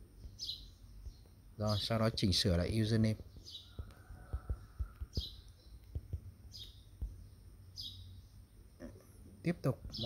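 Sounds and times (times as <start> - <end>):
bird chirping: 0.0 - 10.0
fingers tapping a touchscreen: 3.0 - 7.4.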